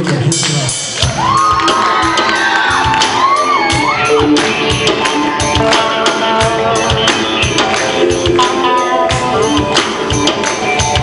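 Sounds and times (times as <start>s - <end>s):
live rock band playing: 0.0s - 11.0s
steady drum beat: 0.0s - 11.0s
crowd shouting: 1.1s - 5.6s.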